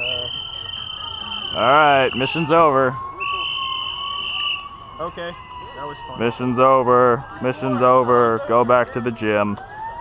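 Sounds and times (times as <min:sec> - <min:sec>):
whistle blast: 0:00.0 - 0:04.8.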